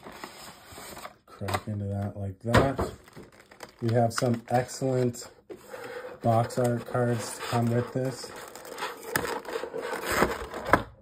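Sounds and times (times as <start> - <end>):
plastic packaging crackling: 3.0 - 5.2, 6.3 - 10.8.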